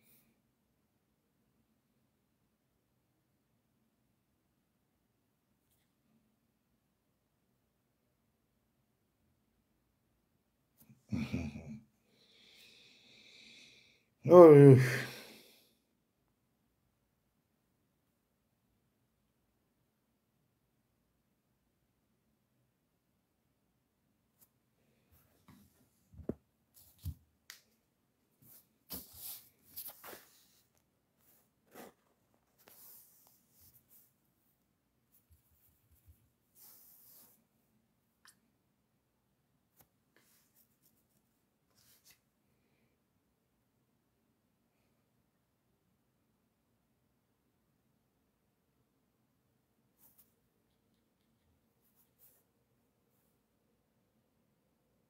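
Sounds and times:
faint rustles and scratches: 24.4s - 27.2s, 28.4s - 37.5s, 40.1s - 42.3s, 50.0s - 53.4s.

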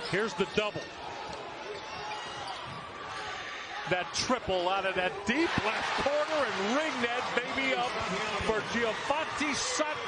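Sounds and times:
arena crowd murmur: 1.0s - 10.0s.

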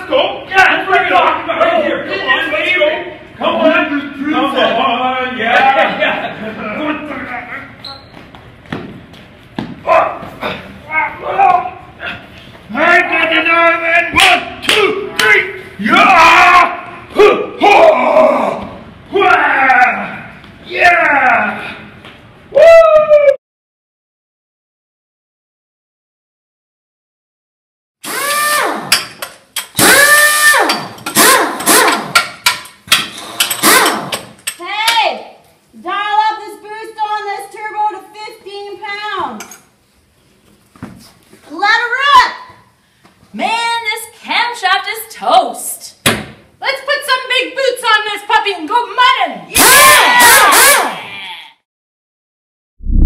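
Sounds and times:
men yelling and shouting: 9.8s - 21.9s, 49.5s - 50.8s.

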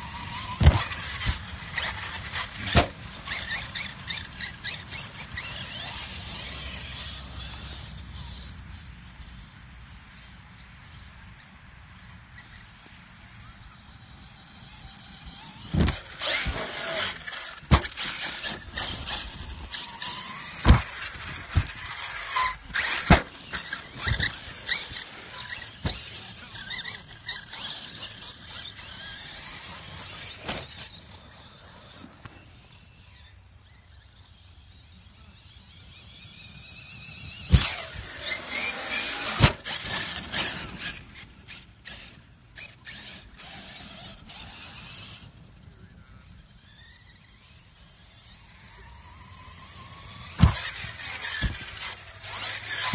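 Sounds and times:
radio-controlled car motors whining: 0.0s - 52.9s
sharp knocks from jumps: 50.4s - 51.8s.

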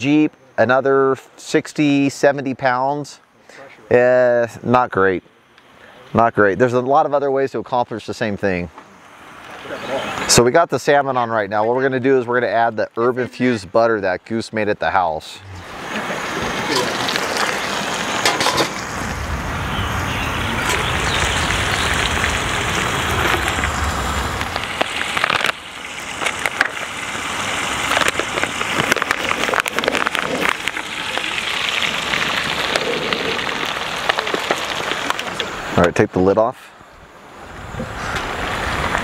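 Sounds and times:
low rumble: 15.4s - 17.9s, 18.7s - 28.6s
fish sizzling in butter: 15.6s - 35.7s.

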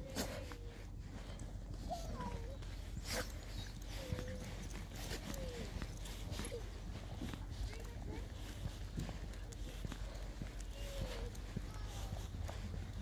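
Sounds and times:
footsteps on muddy path: 0.0s - 13.0s
dog whining: 1.9s - 6.8s.

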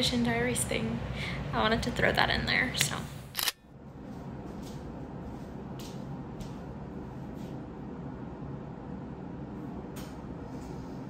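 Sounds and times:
camera shutter click: 3.4s - 3.6s.

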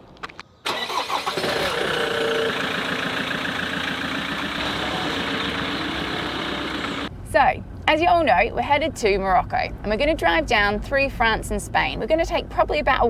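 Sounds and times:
car engine starting and running: 0.7s - 12.9s
vehicle on gravel track: 1.3s - 7.1s.

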